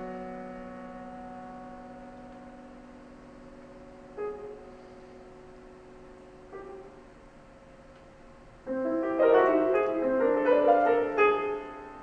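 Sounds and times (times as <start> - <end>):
grand piano chord ringing: 8.7 - 12.0.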